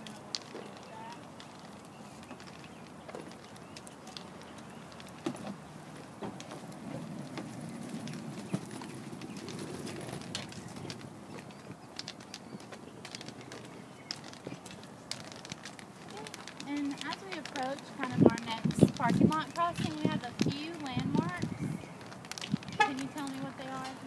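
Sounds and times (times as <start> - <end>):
cane tapping and scraping pavement: 0.0 - 24.0
footsteps on asphalt: 0.0 - 24.0
person speaking: 22.8 - 24.0.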